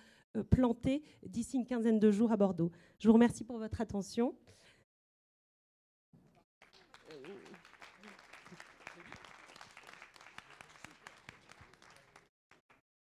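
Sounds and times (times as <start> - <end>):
faint audience applause: 6.3 - 12.8.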